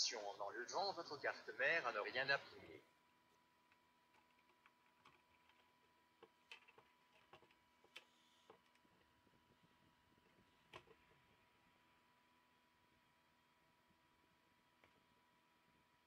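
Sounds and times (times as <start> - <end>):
faint clicks of plastic handling: 3.7 - 9.1.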